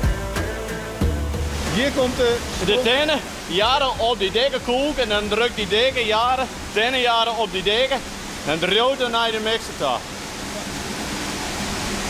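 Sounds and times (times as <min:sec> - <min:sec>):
steady rushing noise: 0:00.0 - 0:12.0
faint steady hum: 0:01.1 - 0:12.0.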